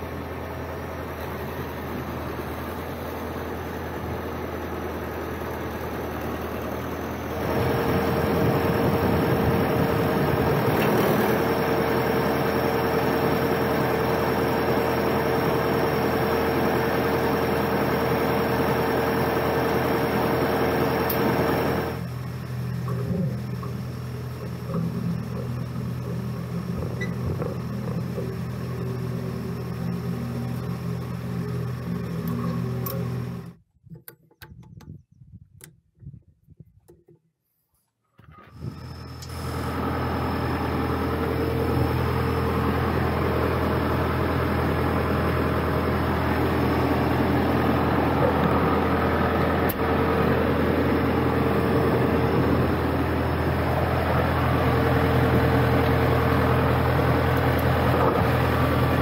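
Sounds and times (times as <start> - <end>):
engine whine: 0.0 - 34.7, 38.2 - 59.0
tractor diesel engine running: 0.0 - 35.0, 38.3 - 59.0.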